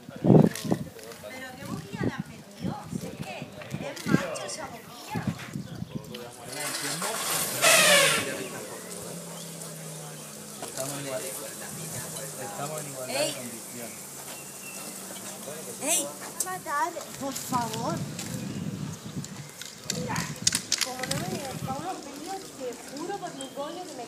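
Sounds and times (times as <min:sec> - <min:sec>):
indistinct voices talking: 0:01.9 - 0:24.0
short hisses: 0:07.2 - 0:08.9.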